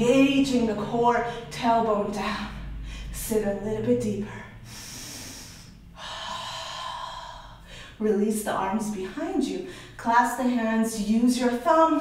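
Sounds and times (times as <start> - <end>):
woman breathing deeply: 2.6 - 3.2, 4.4 - 8.0, 9.6 - 10.0.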